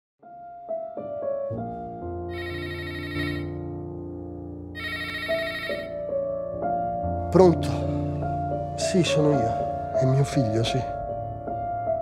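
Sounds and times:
soft piano music: 0.2s - 12.0s
telephone ringing: 2.3s - 3.6s, 4.8s - 6.0s.

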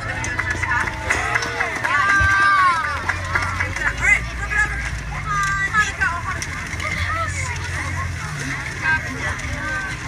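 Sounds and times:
children chattering and calling: 0.0s - 10.0s.

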